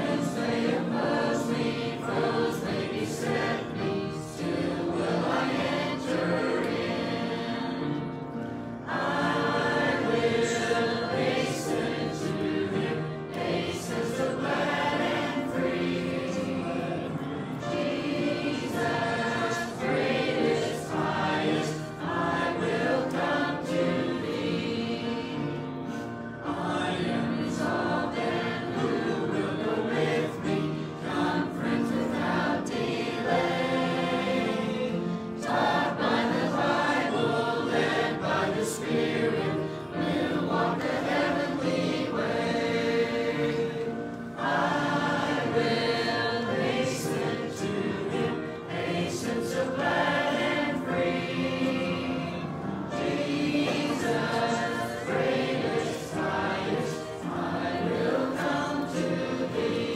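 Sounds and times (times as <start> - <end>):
congregation singing a hymn: 0.0 - 59.9.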